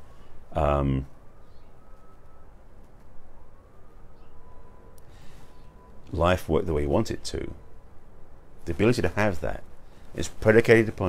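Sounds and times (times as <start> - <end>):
faint high tone gliding up: 0.0 - 9.4.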